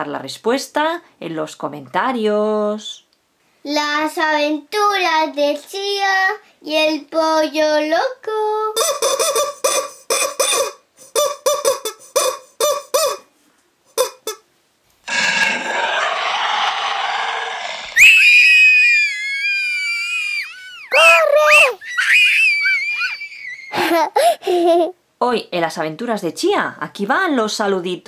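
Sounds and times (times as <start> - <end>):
rubber chicken toy squealing: 8.8 - 13.3, 14.0 - 14.4, 15.1 - 23.9
burst of noise: 15.0 - 19.8.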